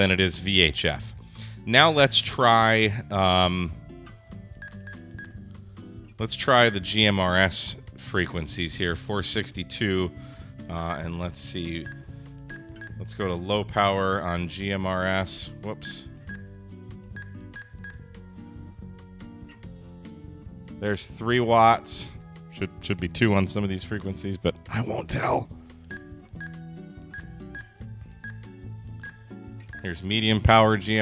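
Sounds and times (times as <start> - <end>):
quiet background music: 0.0 - 31.0
short keypad beeps: 4.6 - 5.4.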